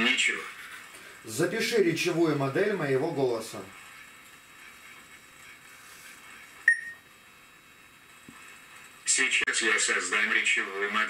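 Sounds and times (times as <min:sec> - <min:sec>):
short electronic beep: 0:06.7 - 0:07.0.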